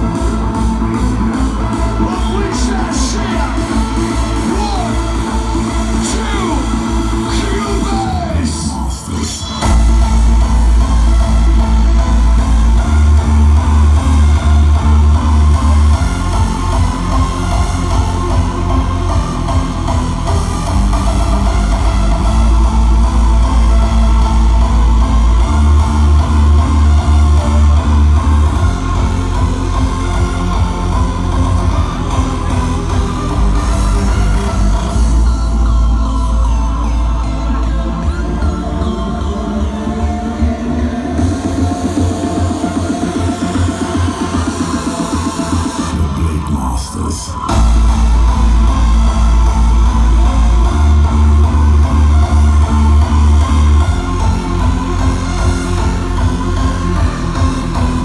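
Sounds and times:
loud hardstyle dance music: 0.0s - 58.0s
heavy distorted kick and bass: 9.6s - 36.4s, 47.5s - 58.0s.

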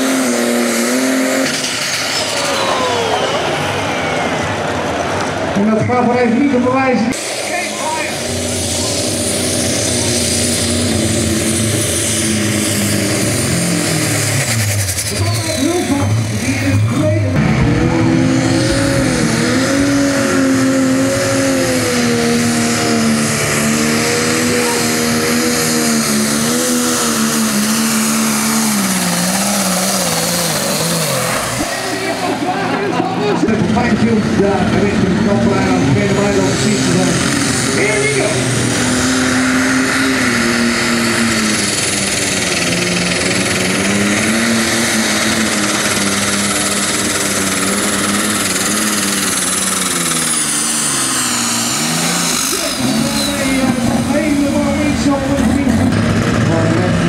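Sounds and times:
diesel tractor engines under load: 0.0s - 57.0s.

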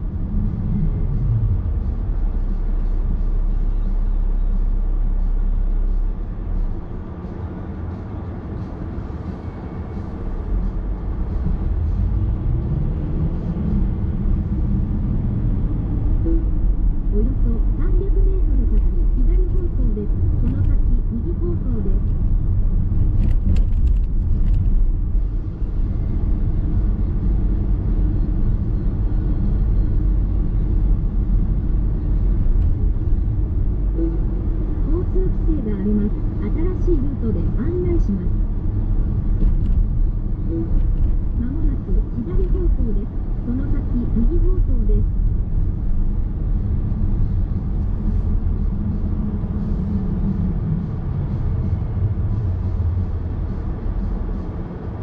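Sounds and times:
car interior road rumble: 0.0s - 55.0s.

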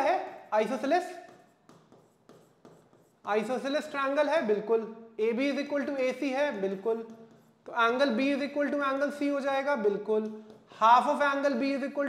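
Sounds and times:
pen scratching on glass screen: 1.1s - 4.0s, 6.6s - 8.1s.

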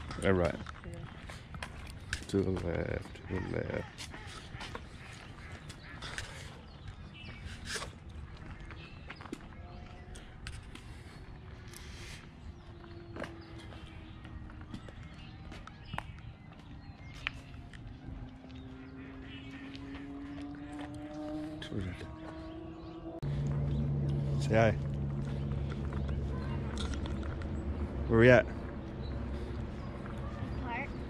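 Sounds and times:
footsteps on paved path: 0.0s - 31.0s
faint drone rising in pitch: 9.4s - 31.0s.

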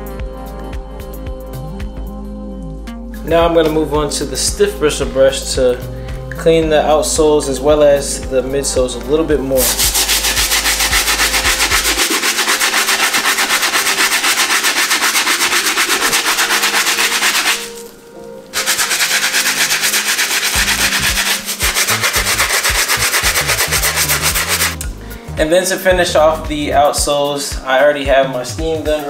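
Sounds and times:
brush scrubbing sneaker sole: 9.6s - 17.9s, 18.6s - 24.8s.

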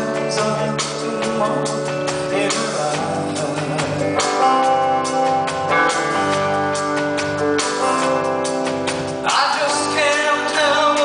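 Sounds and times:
drums: 0.0s - 11.0s
electric guitars: 0.0s - 11.0s
keyboards: 0.0s - 11.0s
live band playing: 0.0s - 11.0s.

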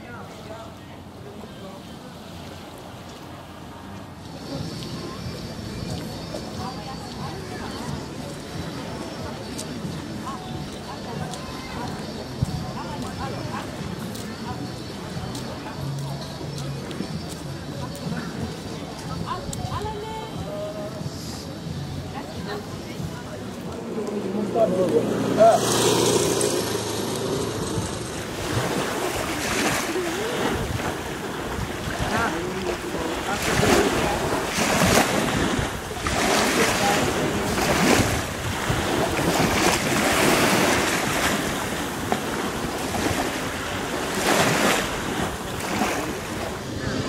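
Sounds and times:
wind on microphone: 22.4s - 47.0s.

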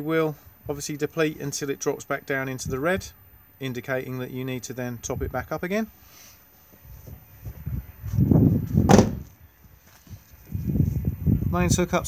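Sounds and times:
low rumbling on microphone: 6.8s - 9.4s, 10.1s - 12.0s
car door shutting thump: 8.8s - 9.3s.

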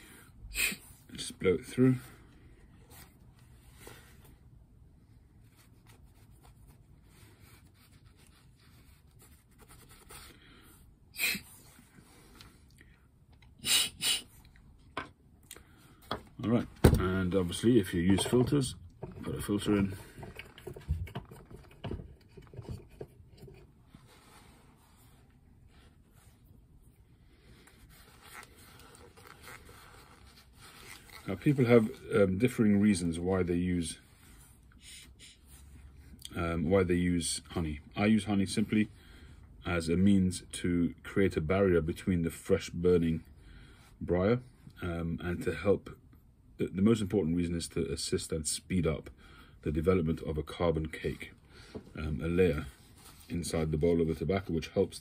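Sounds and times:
pipe cleaner scratching: 18.0s - 24.6s.

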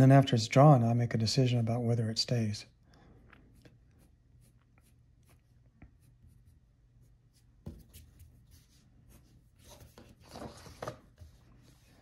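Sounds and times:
pencil scratching on paper: 3.6s - 12.0s.

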